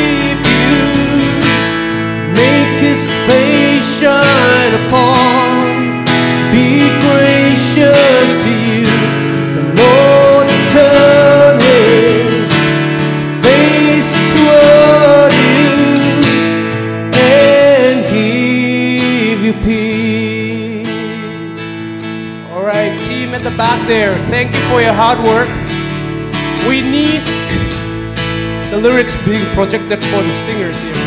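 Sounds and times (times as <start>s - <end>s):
people singing: 0.0s - 1.7s, 2.3s - 5.9s, 6.5s - 12.5s, 13.4s - 19.9s
acoustic guitar: 0.0s - 31.0s
bass: 0.0s - 31.0s
keyboard: 0.0s - 31.0s.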